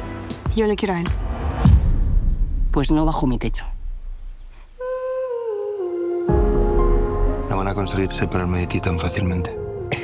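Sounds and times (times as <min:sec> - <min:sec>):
hummed vocal note: 0:04.8 - 0:07.4.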